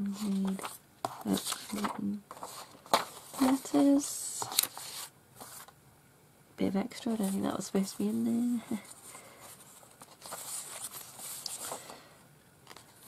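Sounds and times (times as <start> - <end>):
paper rustling: 0.0 - 5.7, 7.2 - 13.0
paper sliding: 0.2 - 5.7, 8.9 - 12.0.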